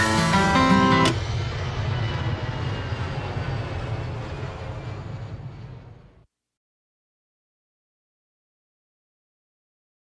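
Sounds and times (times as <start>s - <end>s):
jet engines rumbling: 0.0s - 6.3s.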